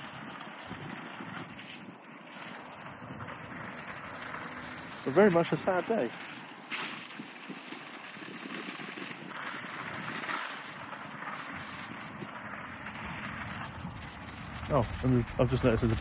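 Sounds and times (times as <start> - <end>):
hose jet spraying water: 0.0 - 16.0.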